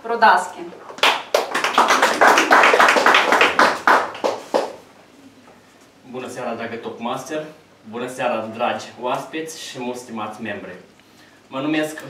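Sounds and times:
audience applauding: 1.0s - 4.8s.

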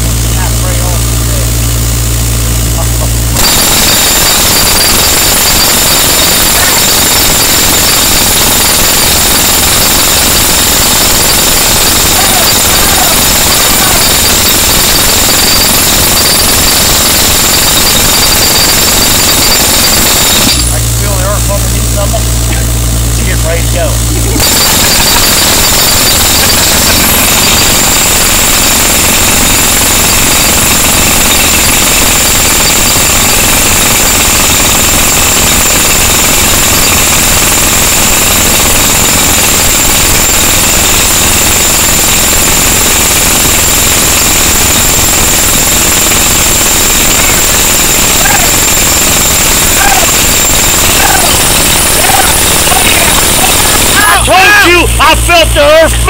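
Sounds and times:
jackhammer hammering into rock: 0.0s - 56.0s
steady high-pitched whine: 0.0s - 56.0s.

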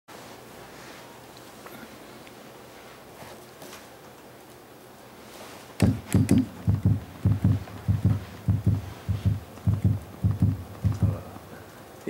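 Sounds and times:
fingers tapping on microphone: 5.8s - 11.4s.

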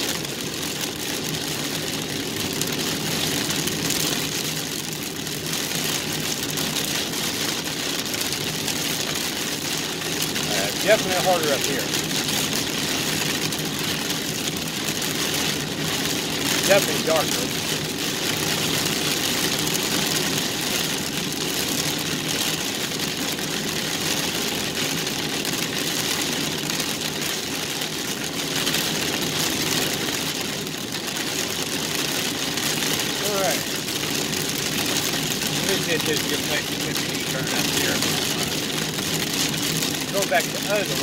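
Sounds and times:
heavy rain on a vehicle: 0.0s - 41.0s
tyres hissing on wet road: 0.0s - 41.0s.

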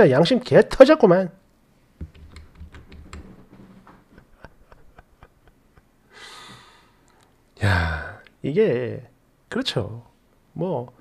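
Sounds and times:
computer keyboard clicking: 2.0s - 3.5s.

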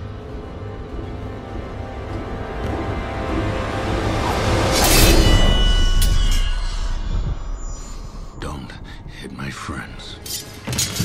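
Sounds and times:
dark orchestral score: 0.0s - 11.0s
sword swishing and striking: 4.7s - 7.7s
high metallic ring: 4.8s - 8.3s.

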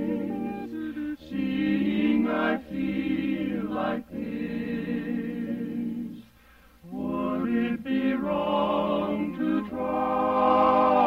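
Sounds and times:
wordless chorus singing harmony: 0.0s - 11.0s.

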